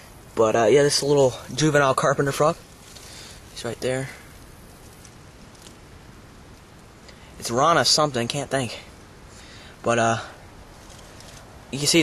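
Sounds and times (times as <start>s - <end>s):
faint outdoor hiss: 0.0s - 12.0s.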